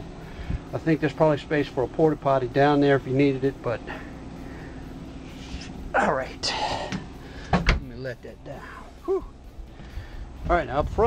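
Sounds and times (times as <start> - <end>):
faint outdoor hum: 0.0 - 11.0.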